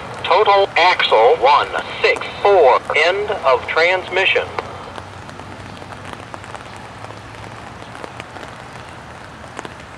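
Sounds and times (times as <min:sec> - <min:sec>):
freight train rumble: 0:00.0 - 0:05.2
steady rain: 0:00.0 - 0:09.9
rain drop taps: 0:02.0 - 0:09.9.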